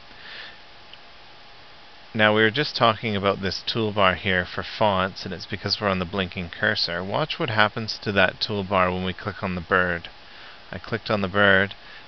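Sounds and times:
faint recording hiss: 0.0 - 12.0
person breathing or sniffing: 0.1 - 0.6, 10.3 - 10.7, 11.8 - 12.0.

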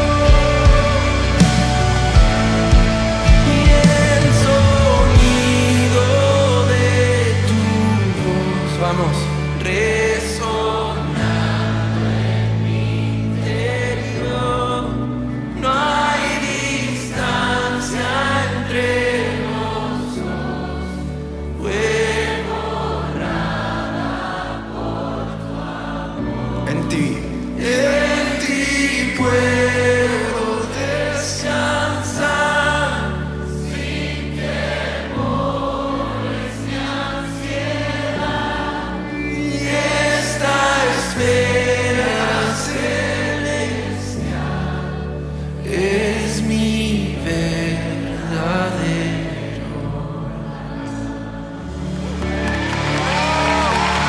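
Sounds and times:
man singing worship song: 0.0 - 24.1, 26.4 - 34.5, 35.1 - 51.8
acoustic guitar: 0.0 - 24.5
band playing slow chords: 0.0 - 54.0.

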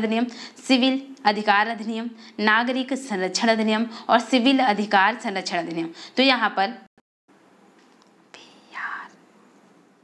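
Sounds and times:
low hiss: 7.3 - 10.0.

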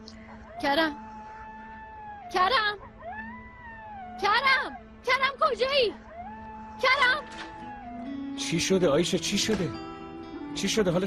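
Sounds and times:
jackals howling: 0.3 - 8.3.

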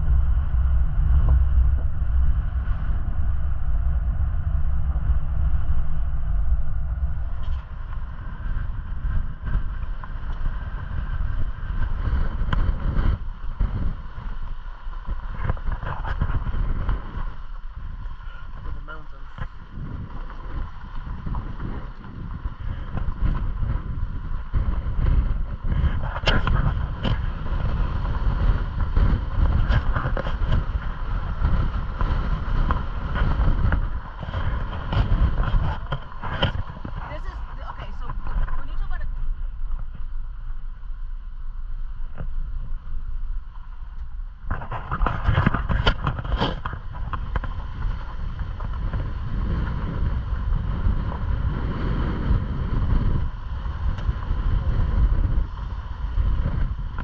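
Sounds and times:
jeep engine and tyres rumbling: 0.0 - 57.0
wind buffeting microphone: 0.0 - 57.0.

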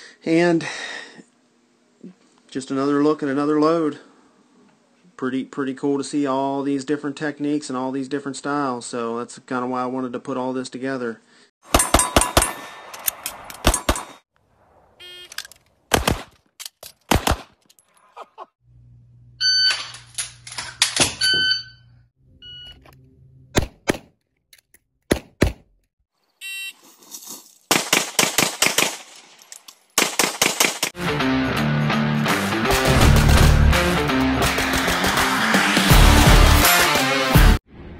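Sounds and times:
handgun shots: 15.9 - 16.4, 17.0 - 17.6.

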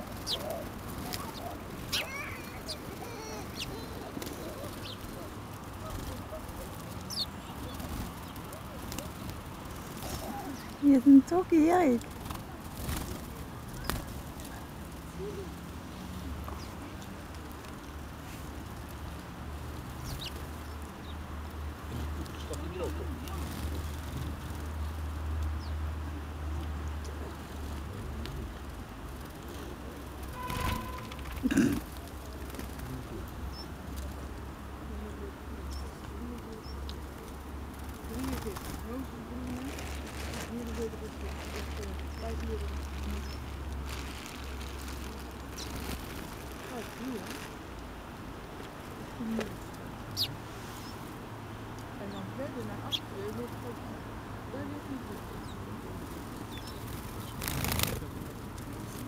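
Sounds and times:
house sparrow chirps: 0.0 - 9.2, 50.2 - 51.0, 56.3 - 57.8
faint voices: 0.0 - 17.4, 21.8 - 59.0
low outdoor rumble: 0.0 - 59.0.

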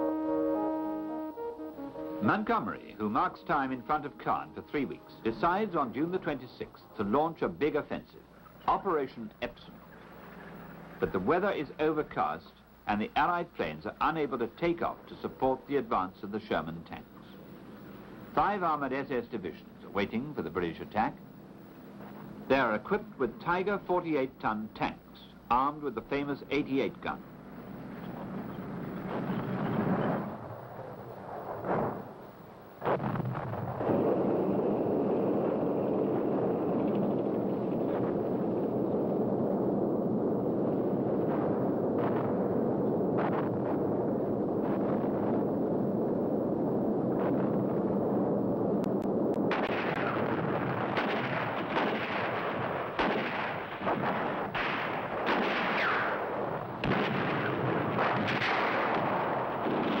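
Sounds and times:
artillery bangs and rumble: 27.8 - 30.5, 31.3 - 32.2, 32.8 - 46.2, 47.0 - 48.2, 49.4 - 60.0
gunfire: 31.3 - 32.2, 32.8 - 38.4, 41.1 - 44.0, 49.4 - 60.0.

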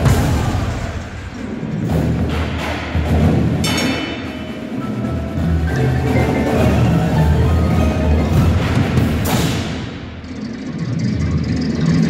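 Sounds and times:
drums: 0.0 - 12.0
marimbas and mallet percussion: 3.6 - 9.5
electronic backing: 4.8 - 9.3.

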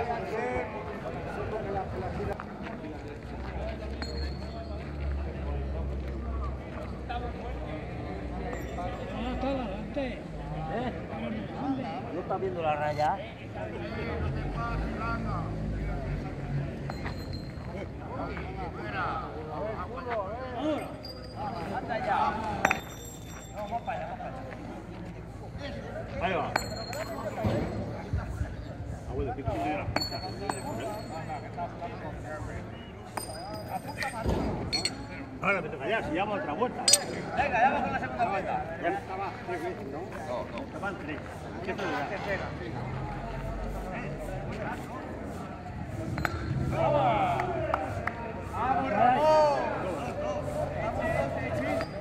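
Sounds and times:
men's voices: 0.0 - 52.0
metal piece landing with clink: 33.2 - 35.0, 36.9 - 37.3
sharp metallic clink: 36.8 - 37.4.

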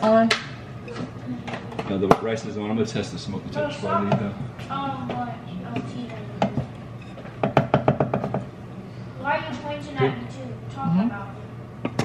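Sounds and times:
wooden spatula knocking on pan: 7.4 - 8.4.

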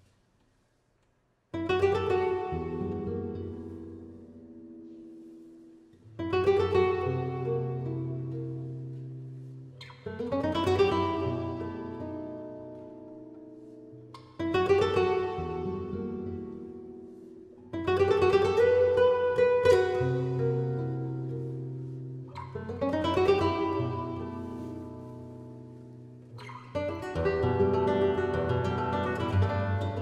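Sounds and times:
flamenco guitar chords: 1.5 - 30.0.

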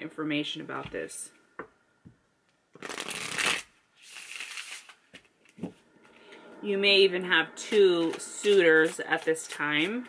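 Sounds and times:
cards riffling: 2.8 - 5.6.

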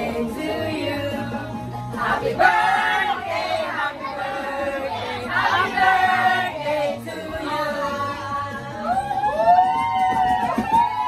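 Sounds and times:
women's voices whooping cry: 8.8 - 11.0.

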